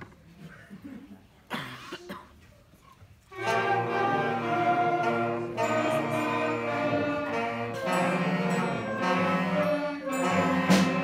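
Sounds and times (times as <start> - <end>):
concert band playing sustained chords: 3.4 - 11.0.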